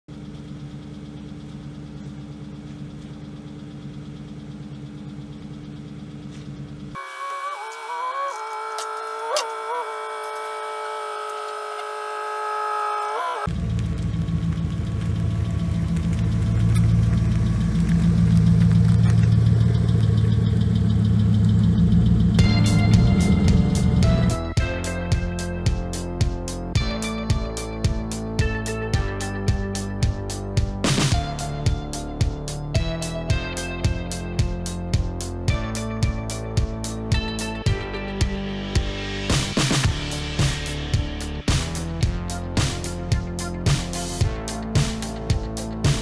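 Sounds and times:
bass-heavy background music: 0.0s - 7.0s, 13.5s - 46.0s.

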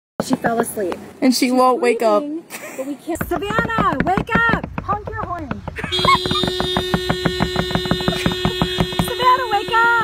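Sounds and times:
fast even ticking: 3.2s - 10.0s
car horn long note: 5.9s - 10.0s.

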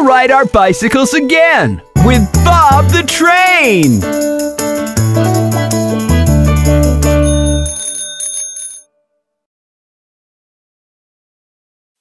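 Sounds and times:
bicycle bell ringing: 7.0s - 8.9s.

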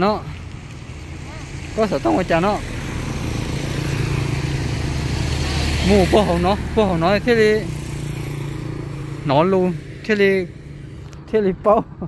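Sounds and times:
vehicle driving past: 0.4s - 11.1s
person speaking: 5.5s - 7.8s, 11.2s - 12.0s.

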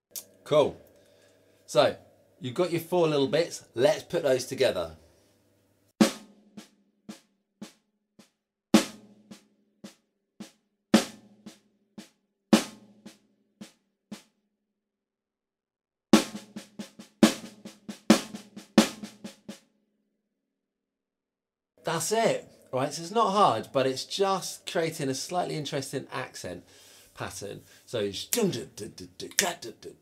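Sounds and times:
snare drum played with sticks: 6.0s - 14.3s, 16.2s - 19.6s.

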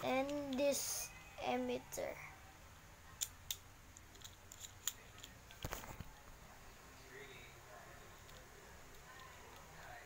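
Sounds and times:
plastic toy parts clicking: 3.2s - 5.7s.

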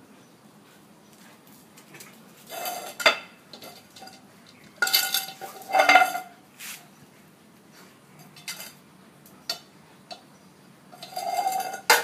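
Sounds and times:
dog bowl clattering on tiles: 2.5s - 6.3s.

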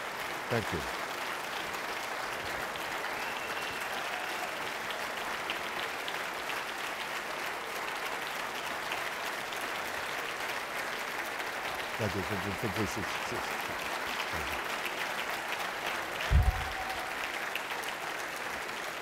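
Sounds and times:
large audience applauding: 0.0s - 19.0s.

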